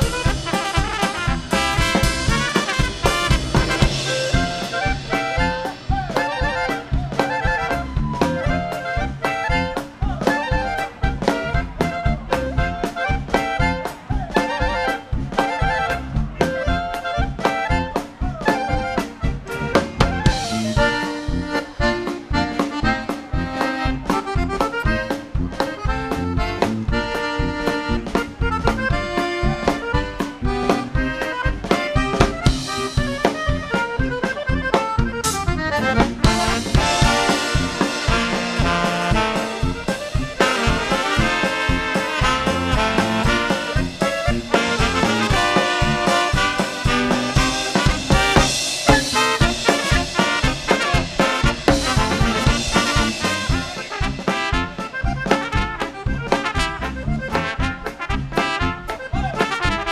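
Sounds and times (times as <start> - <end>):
accordion lead: 0.0 - 59.9
polka band playing: 0.0 - 59.9.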